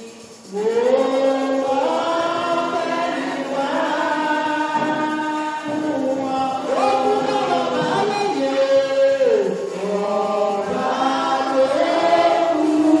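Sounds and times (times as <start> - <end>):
congregation singing: 0.0 - 13.0.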